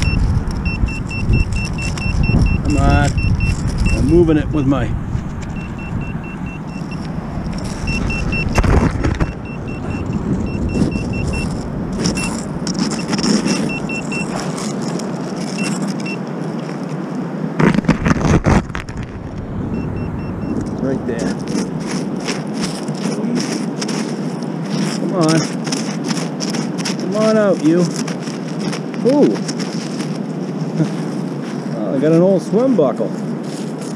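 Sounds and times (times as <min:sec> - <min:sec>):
metal detector beeping: 0:00.0 - 0:04.8, 0:05.4 - 0:16.8, 0:19.3 - 0:32.4
hand scraping wet sand: 0:00.0 - 0:19.2, 0:20.0 - 0:33.9
stones clattering: 0:20.6 - 0:31.7.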